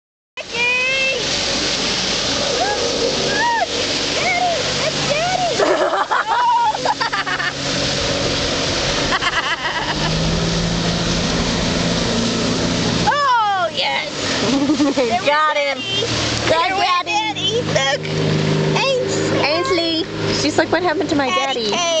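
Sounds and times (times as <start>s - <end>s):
motorboat engine drone: 0.4s - 22.0s
rush of water: 0.4s - 22.0s.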